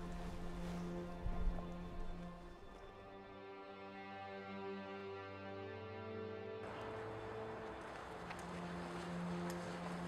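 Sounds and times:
soft ambient music low notes: 0.0s - 10.0s.

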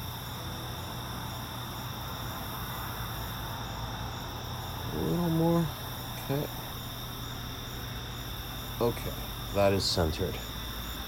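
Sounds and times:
crickets trilling: 0.0s - 11.0s
low steady hum: 0.0s - 11.0s
insect call in short pulses: 3.3s - 11.0s.

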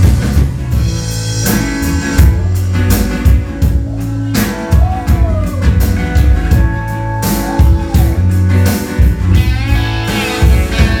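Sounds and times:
drum kit: 0.0s - 11.0s
guitars playing: 0.0s - 11.0s.

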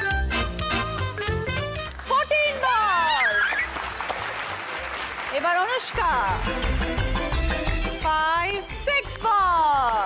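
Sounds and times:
upbeat background music: 0.0s - 4.1s, 5.4s - 10.0s.

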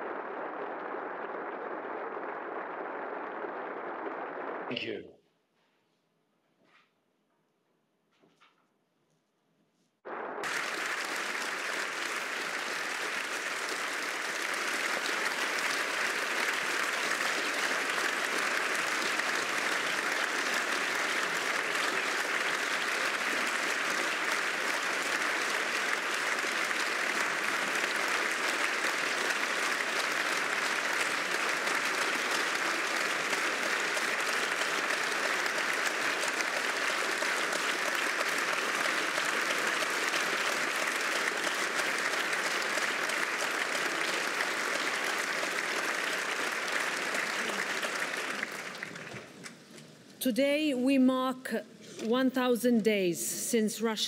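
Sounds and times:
audience applause: 0.0s - 4.8s, 10.1s - 50.0s.

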